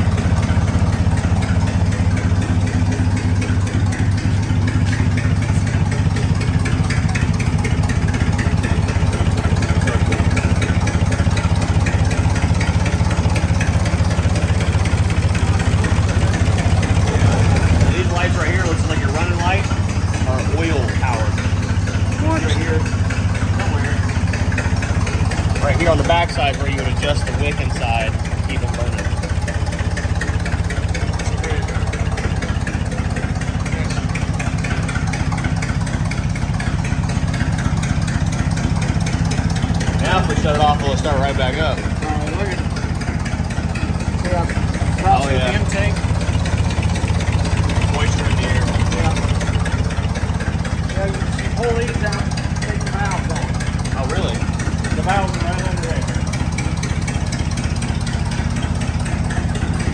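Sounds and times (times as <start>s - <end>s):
truck engine idling: 0.0s - 59.9s.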